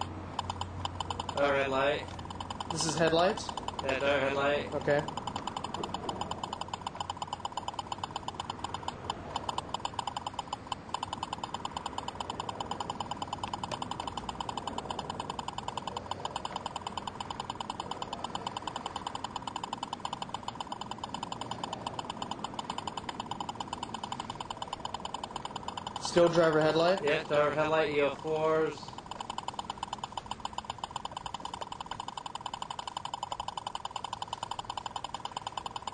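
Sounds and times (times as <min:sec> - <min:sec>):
speed gun pulsed tone: 0:00.0 - 0:35.9.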